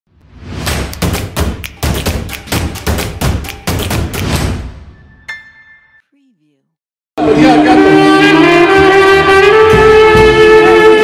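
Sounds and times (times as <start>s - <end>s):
deep echoing percussive hits: 0.6s - 4.9s.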